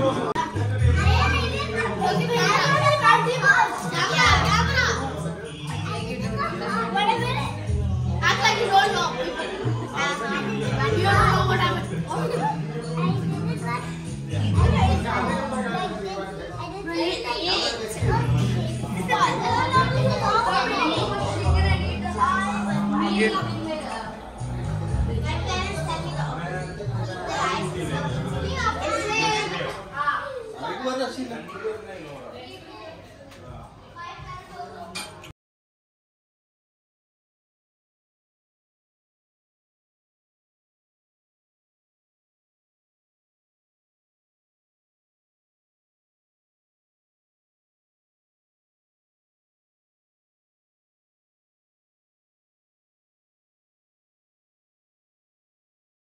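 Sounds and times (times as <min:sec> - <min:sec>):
children talking and calling out: 0:00.0 - 0:35.3.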